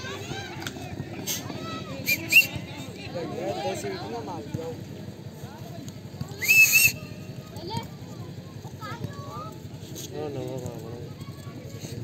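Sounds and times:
faint voices of players: 0.0s - 12.0s.

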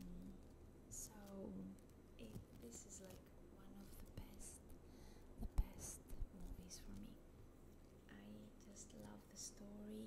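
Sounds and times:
woman whispering: 0.0s - 4.6s, 5.4s - 7.2s, 8.1s - 10.0s.

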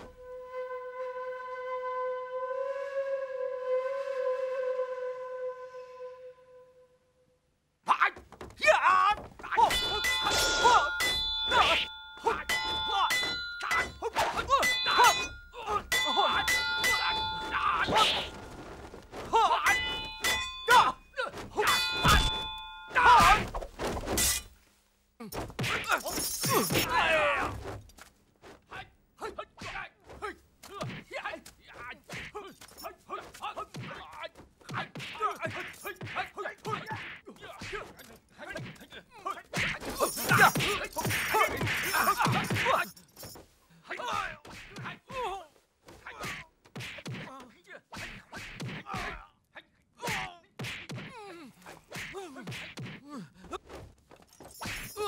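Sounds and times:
metal weapons clashing: 9.4s - 24.5s, 25.5s - 27.2s, 34.9s - 39.0s, 39.6s - 43.4s, 54.3s - 55.0s.

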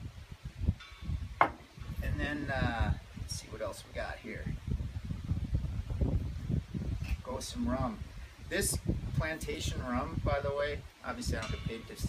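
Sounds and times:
wind noise on microphone: 0.0s - 12.0s.

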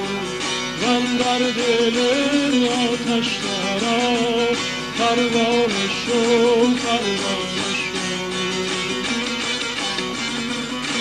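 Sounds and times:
long-necked lute melody: 0.0s - 11.0s.

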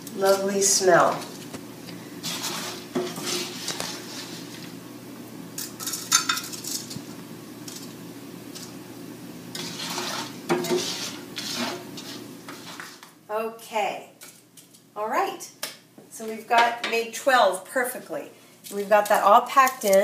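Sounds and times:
wooden spoon scraping a skillet: 0.2s - 4.8s, 9.5s - 13.2s.

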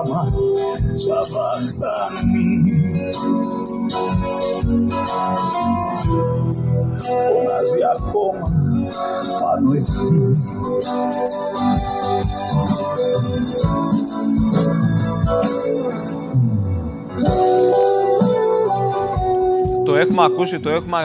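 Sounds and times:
acoustic guitar: 0.0s - 21.0s
live band playing slow song: 0.0s - 21.0s.

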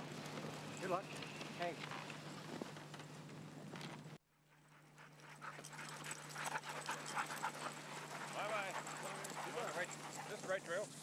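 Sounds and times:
dogs panting: 4.4s - 11.0s.

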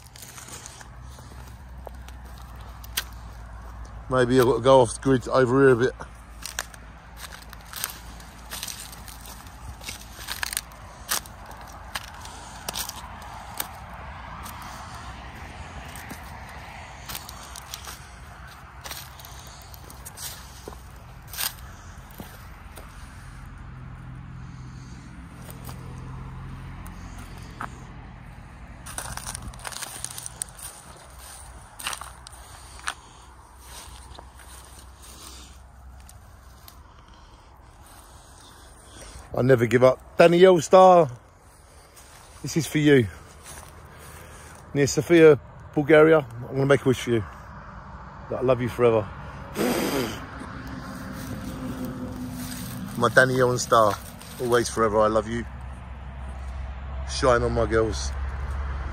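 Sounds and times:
dry stems snapping: 0.0s - 4.5s, 6.1s - 22.9s, 28.8s - 39.2s, 50.4s - 54.6s
footsteps crunching through stubble: 0.0s - 47.6s, 48.3s - 58.8s.

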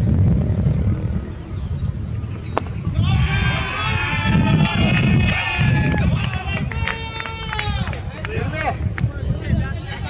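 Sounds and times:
steady low rumble: 0.0s - 10.0s
people talking and calling out: 2.2s - 10.0s
long held call: 2.6s - 8.3s.

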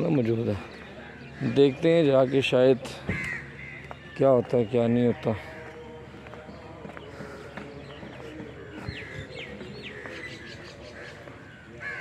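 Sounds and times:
birds calling: 0.0s - 12.0s
steady background noise: 0.0s - 12.0s.

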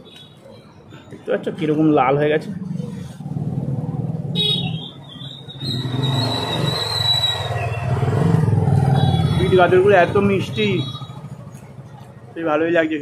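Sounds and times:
motorcycle engine rumbling: 0.6s - 13.0s.

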